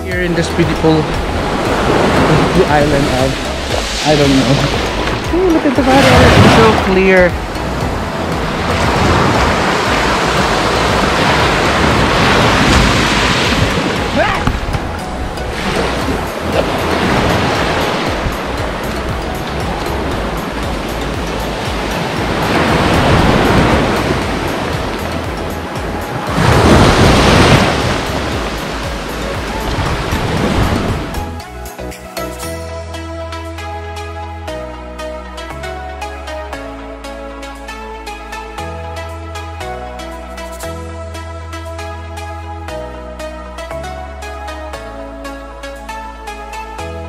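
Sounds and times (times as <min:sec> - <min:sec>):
small waves breaking on sand: 0:00.6 - 0:14.5, 0:15.5 - 0:31.2.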